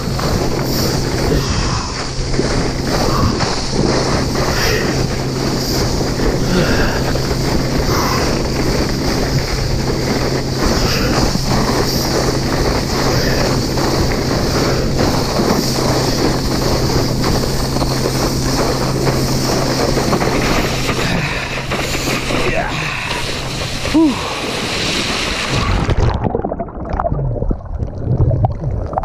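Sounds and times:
wind buffeting microphone: 0.0s - 26.4s
rushing water and spray: 0.0s - 27.0s.

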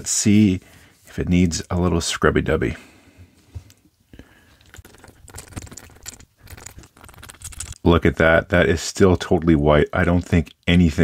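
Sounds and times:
cotton swab scratching plastic: 4.6s - 7.8s.

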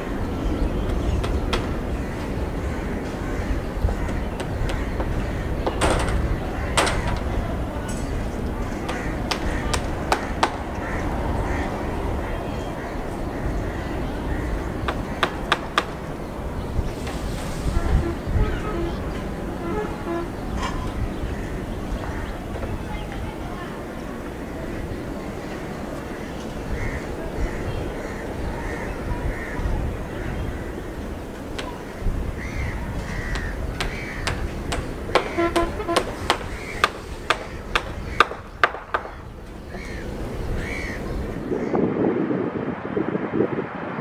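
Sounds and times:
jet engines rumbling: 0.0s - 44.0s
crow cawing: 1.9s - 5.7s, 8.8s - 15.6s, 26.7s - 29.7s, 31.8s - 34.4s, 39.1s - 41.8s.

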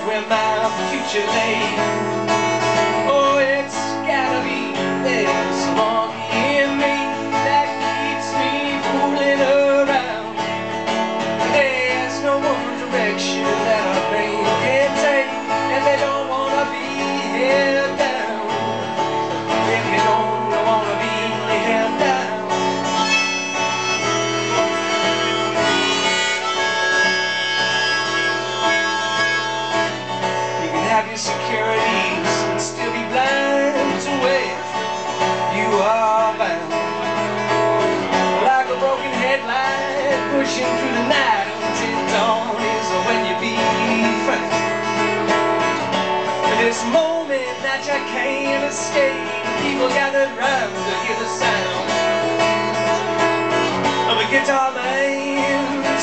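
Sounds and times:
acoustic guitar music: 0.0s - 56.0s.

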